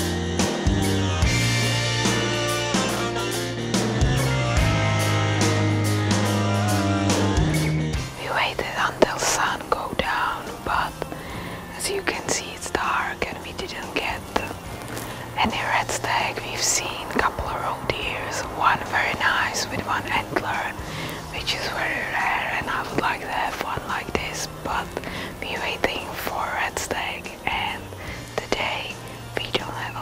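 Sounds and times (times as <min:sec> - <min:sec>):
rock music with guitar: 0:00.0 - 0:29.9
woman whispering: 0:08.2 - 0:11.1, 0:11.7 - 0:14.6, 0:15.4 - 0:30.0.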